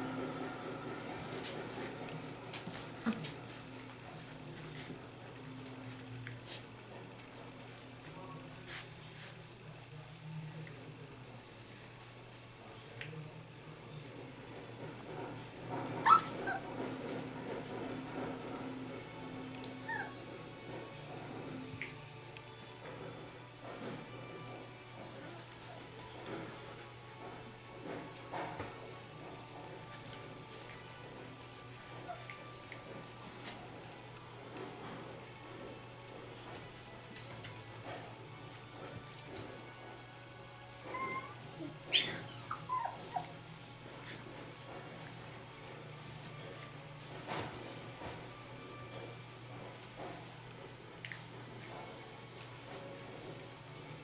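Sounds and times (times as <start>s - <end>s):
puppies yelping and whimpering: 16.0s - 16.7s, 19.8s - 20.2s, 40.8s - 43.4s.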